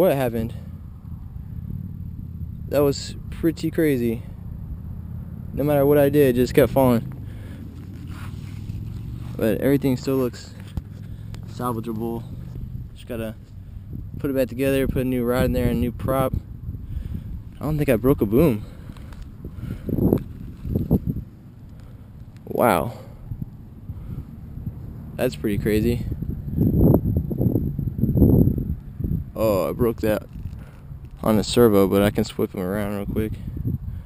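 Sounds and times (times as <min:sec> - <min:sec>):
steady low hum: 0:00.0 - 0:34.0
wind buffeting microphone: 0:00.0 - 0:34.0
handling rustling and scraping: 0:07.0 - 0:13.6, 0:18.5 - 0:22.4.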